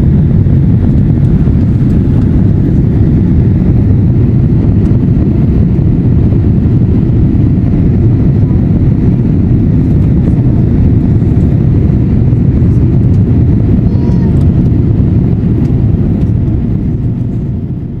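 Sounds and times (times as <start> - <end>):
jet engine roar in cabin: 0.0 - 18.0.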